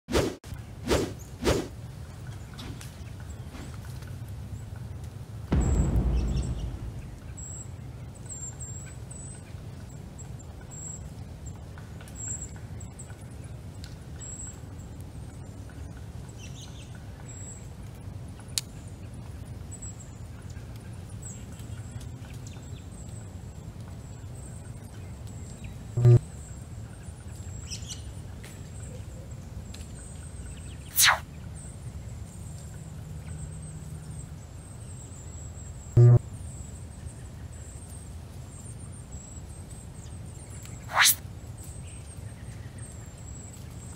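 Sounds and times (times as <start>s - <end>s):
short loud low sound: 5.5s - 7.8s
steady low rumble: 5.5s - 7.9s
whoosh sound effects: 5.6s - 7.6s, 30.9s - 31.2s, 40.9s - 41.2s.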